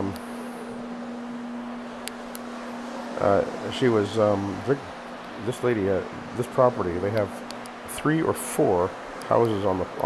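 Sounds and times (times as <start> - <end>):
carpet cleaner motor hum: 0.0 - 10.0.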